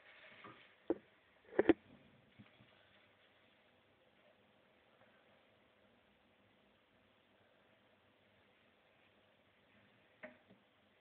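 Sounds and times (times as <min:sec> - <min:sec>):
faint rustling: 0:00.0 - 0:05.6.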